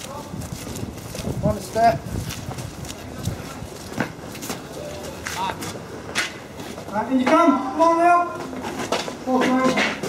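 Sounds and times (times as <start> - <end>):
boots walking on hard ground: 0.0 - 7.5, 8.3 - 10.0.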